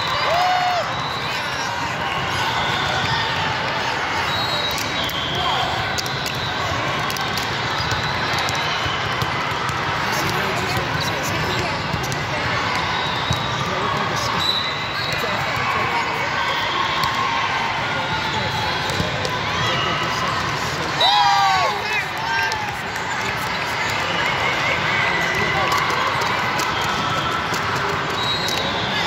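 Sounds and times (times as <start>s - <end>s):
murmur of voices in hall: 0.0s - 29.0s
balls bouncing and smacking: 5.9s - 13.5s, 18.8s - 19.4s.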